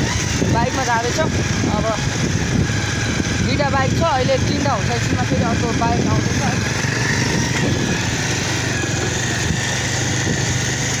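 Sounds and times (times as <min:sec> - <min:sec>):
motorcycle engine running: 0:00.0 - 0:11.0
road and wind noise: 0:00.0 - 0:11.0.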